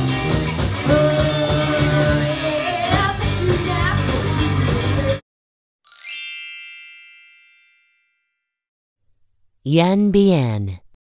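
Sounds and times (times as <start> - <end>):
rock song: 0.0 - 5.2
bell-like chime: 5.9 - 8.6.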